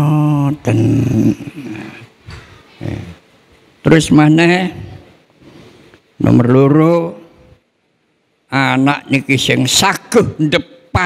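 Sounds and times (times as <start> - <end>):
rough throat sounds: 0.7 - 3.3.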